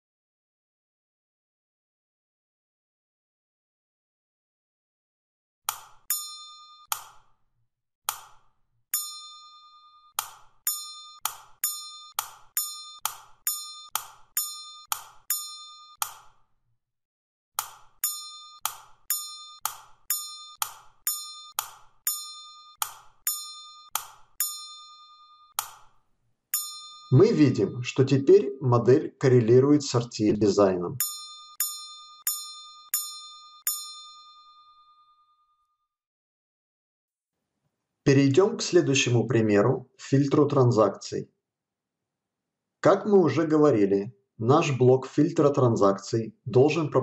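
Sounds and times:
short bell-like dings: 6.0s - 7.0s, 8.9s - 16.1s, 18.0s - 25.6s, 26.5s - 27.9s, 31.0s - 35.8s.

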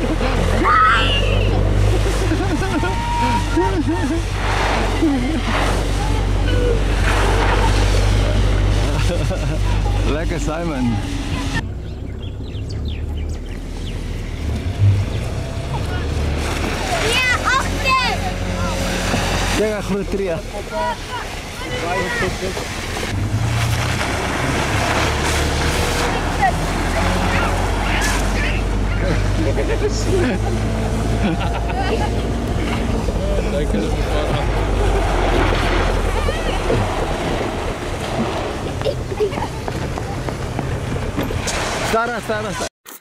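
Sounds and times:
vehicle rumble: 0.0s - 42.7s
children calling out: 0.4s - 1.8s, 2.6s - 3.9s, 35.8s - 37.1s.

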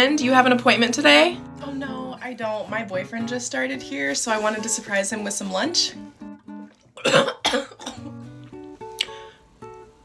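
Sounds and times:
soft acoustic guitar music: 0.0s - 10.0s
woman coughing: 7.0s - 8.1s.

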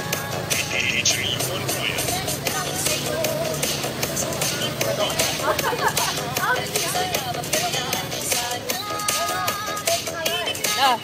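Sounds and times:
dance music with steady beat: 0.0s - 11.0s
person singing: 0.0s - 11.0s.

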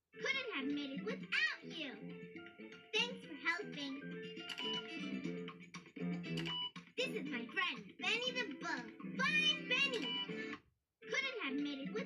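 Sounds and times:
cheerful cartoon music: 0.1s - 12.0s
child's voice: 0.2s - 2.2s, 2.9s - 4.2s, 7.0s - 10.3s, 11.1s - 12.0s.

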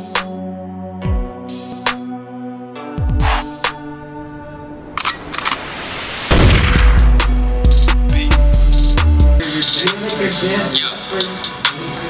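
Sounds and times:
music track: 0.0s - 12.0s
loud deep beat: 3.0s - 3.8s, 6.3s - 9.4s
sharp hits: 4.9s - 8.1s
rising hiss effect: 5.5s - 7.1s.

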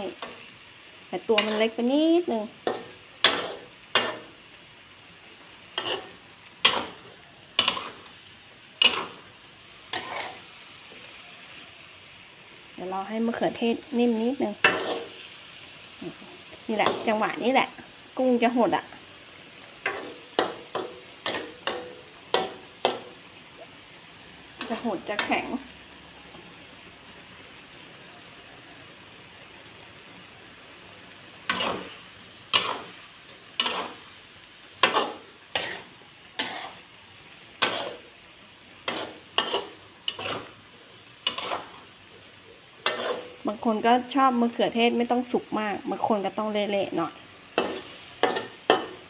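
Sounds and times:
food sizzling: 0.0s - 49.0s
metal spatula scraping a wok: 1.2s - 4.4s, 5.6s - 11.7s, 14.5s - 17.2s, 19.8s - 23.2s, 31.5s - 34.2s, 34.8s - 38.2s, 38.8s - 43.6s, 47.5s - 49.0s.

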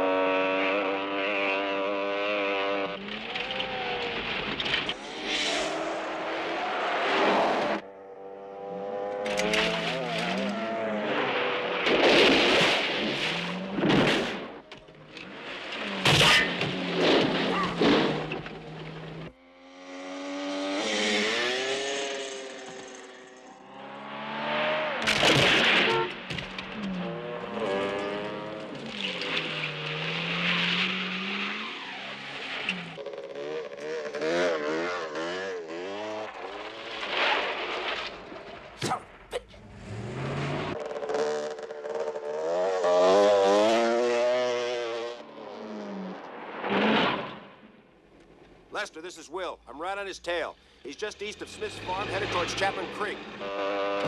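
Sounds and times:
dirt bike engine revving: 0.0s - 14.7s, 15.3s - 37.6s, 38.8s - 47.0s, 48.7s - 54.0s
car engine revving: 0.0s - 54.0s.

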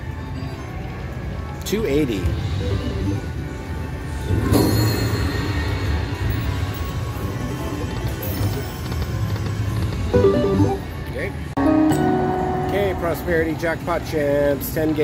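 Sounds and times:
slot machine game music and jingles: 4.0s - 9.3s, 10.1s - 11.0s, 11.6s - 14.0s.

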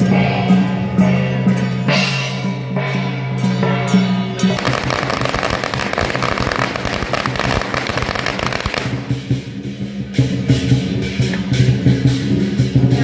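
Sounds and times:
festival music: 0.0s - 13.0s
firecrackers crackling: 4.6s - 9.5s.

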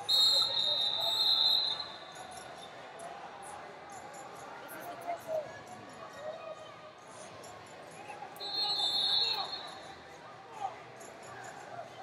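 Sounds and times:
distant voices in arena: 0.0s - 12.0s.

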